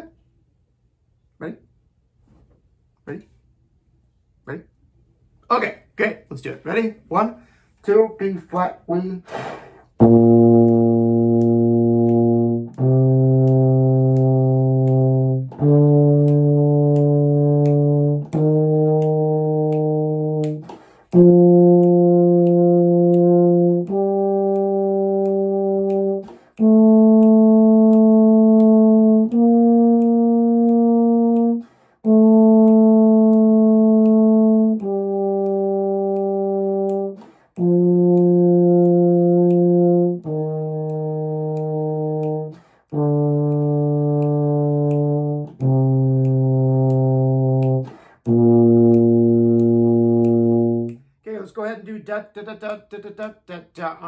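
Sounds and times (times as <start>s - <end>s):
player breathing: 7.4s - 7.8s, 9.2s - 10.0s
euphonium playing scale: 10.0s - 51.0s.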